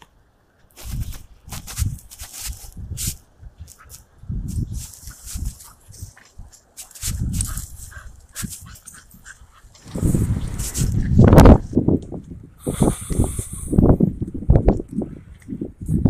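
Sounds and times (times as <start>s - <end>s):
dry grass crackling and rustling: 0.6s - 12.3s
low wind rumble on microphone: 0.8s - 16.0s
dog sniffing: 6.8s - 9.8s.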